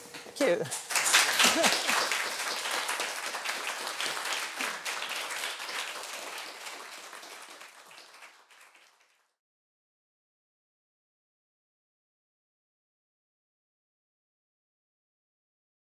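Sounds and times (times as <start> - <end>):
audience applauding: 0.7 - 9.4.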